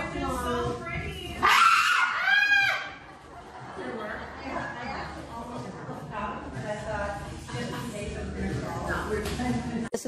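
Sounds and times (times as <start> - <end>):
high pitched scream: 1.4 - 3.0.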